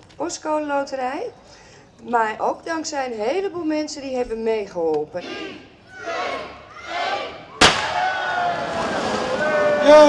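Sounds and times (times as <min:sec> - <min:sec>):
crowd cheering: 0:06.0 - 0:10.0
confetti cannon bang: 0:07.6 - 0:08.2.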